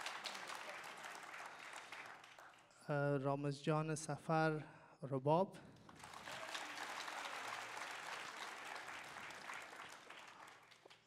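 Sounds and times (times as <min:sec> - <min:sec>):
audience applauding: 0:00.0 - 0:02.8, 0:05.9 - 0:11.0.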